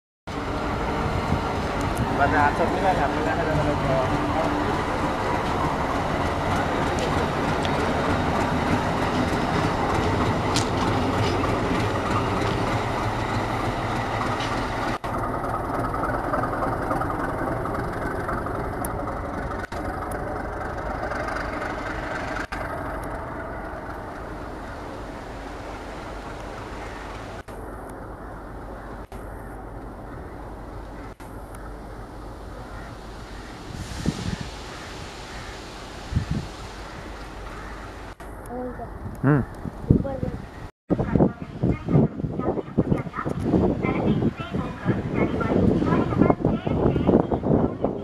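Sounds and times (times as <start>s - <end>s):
diesel locomotive rumble: 0.3s - 48.0s.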